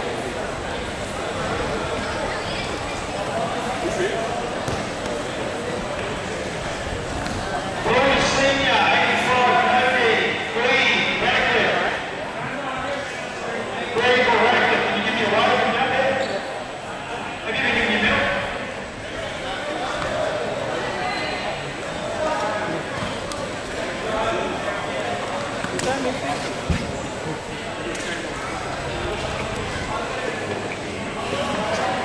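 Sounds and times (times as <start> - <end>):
crowd chatter: 0.0 - 32.0.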